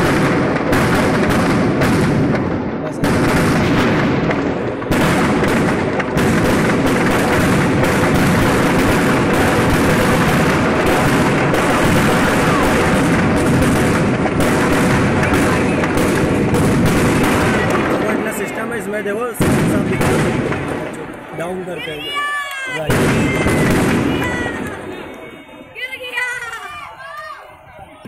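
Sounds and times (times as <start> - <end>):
firecrackers banging and crackling: 0.0 - 28.0.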